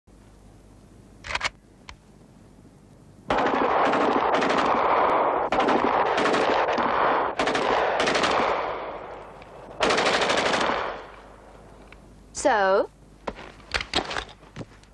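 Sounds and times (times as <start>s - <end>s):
automatic rifle bursts: 3.3s - 11.3s.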